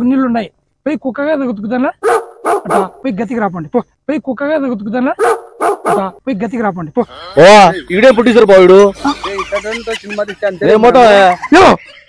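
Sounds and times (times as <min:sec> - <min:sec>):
man talking: 0:00.0 - 0:02.0, 0:02.6 - 0:11.9
dog barking: 0:02.0 - 0:03.0, 0:05.2 - 0:06.2.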